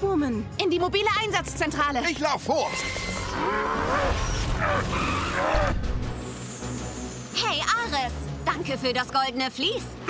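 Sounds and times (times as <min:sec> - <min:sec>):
action soundtrack music: 0:00.0 - 0:10.0.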